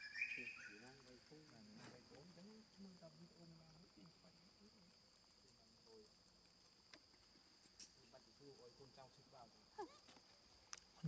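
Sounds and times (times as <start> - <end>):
forest insects droning: 0.0 - 11.0.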